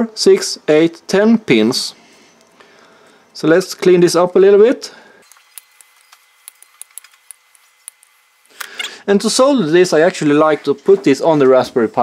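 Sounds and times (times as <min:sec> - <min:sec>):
flush cutters clicking: 0:05.3 - 0:09.0.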